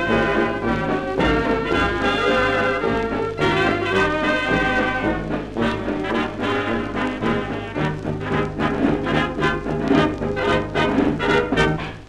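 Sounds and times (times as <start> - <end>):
dance orchestra with brass: 0.0 - 12.0
record surface noise: 0.0 - 12.0.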